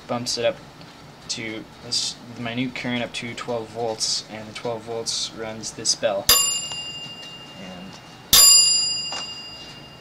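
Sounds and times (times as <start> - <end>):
electric bell ringing: 6.3 - 10.0.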